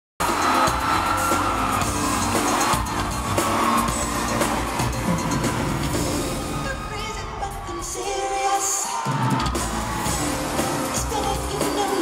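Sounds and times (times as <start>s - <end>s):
crowd cheering: 0.2s - 12.0s
live pop concert music: 0.2s - 12.0s.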